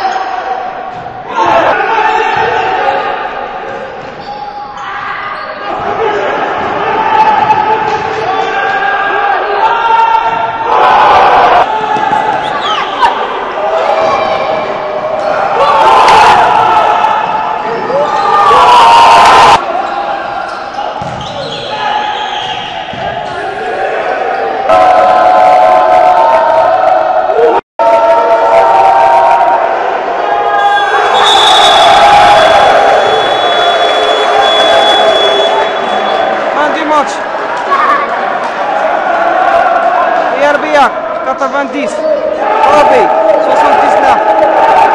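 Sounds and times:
people shouting: 0.0 - 44.9
basketball bouncing on court: 21.0 - 21.6.

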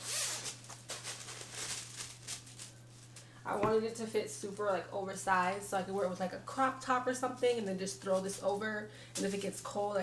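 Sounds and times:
cloth and zipper rustling: 0.0 - 2.6.

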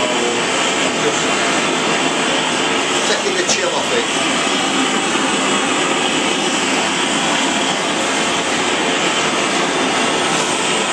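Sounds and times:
gas torch flame hissing: 0.0 - 10.9.

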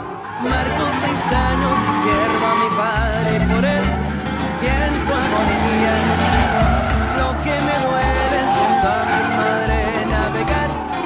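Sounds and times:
background music with bass line: 0.0 - 11.0
tires squealing: 0.0 - 11.0.

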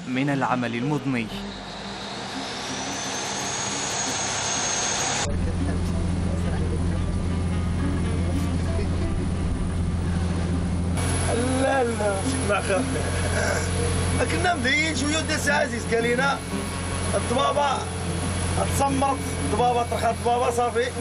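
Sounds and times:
boat engine droning: 0.0 - 21.0
hissing with high whine: 1.1 - 5.3, 9.9 - 21.0.

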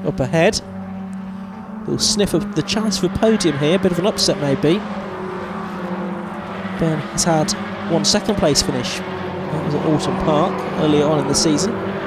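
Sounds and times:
race car engines passing: 0.0 - 12.0.

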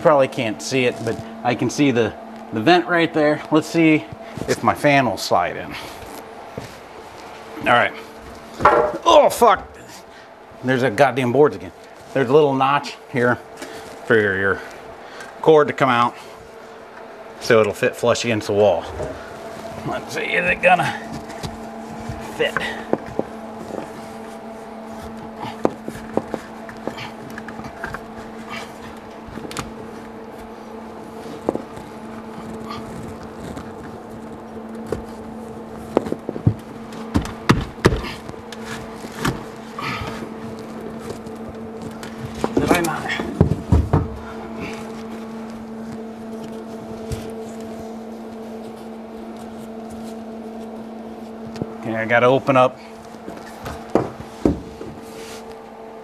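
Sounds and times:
steady low hum: 0.0 - 56.0
knocks and scrapes of fan fitting: 31.1 - 45.3, 53.2 - 55.6.

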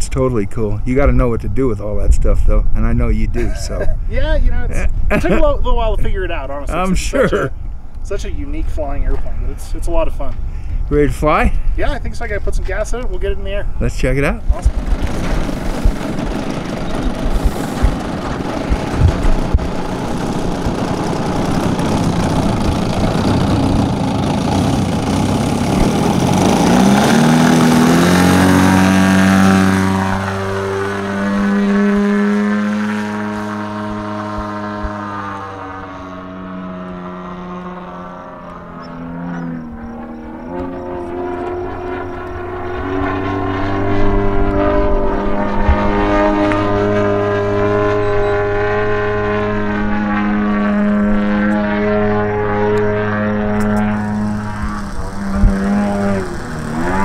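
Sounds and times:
model plane engine: 14.5 - 32.2, 33.8 - 57.0.

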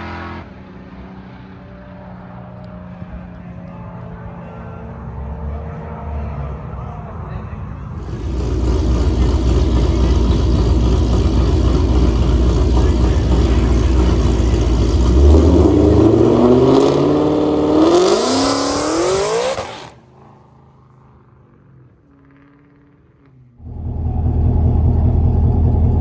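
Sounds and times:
drag car engine accelerating hard: 8.0 - 26.0.

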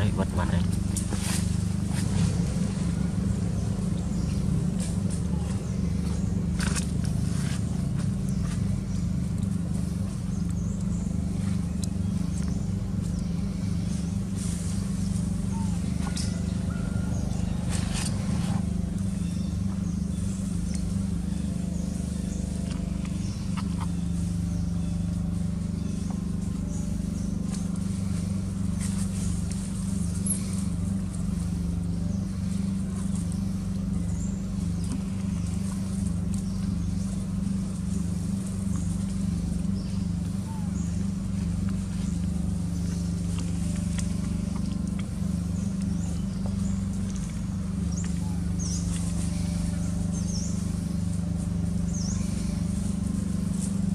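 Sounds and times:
steady low drone: 0.0 - 53.9.

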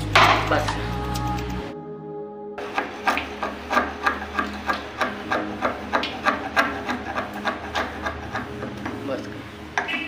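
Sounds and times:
chisel scraping door frame: 3.0 - 9.0.

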